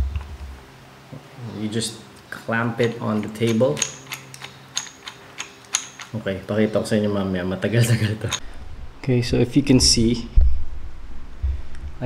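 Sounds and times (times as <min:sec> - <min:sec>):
clamp screw clicking: 0:02.8 - 0:06.2.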